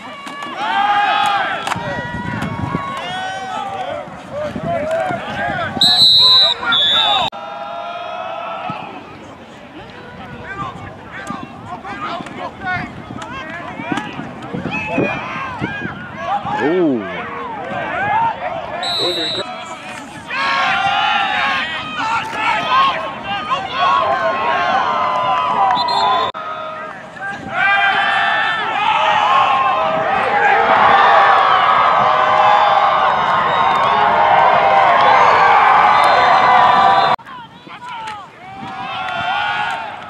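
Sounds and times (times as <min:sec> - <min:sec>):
crowd shouting and cheering: 0:00.0 - 0:40.0.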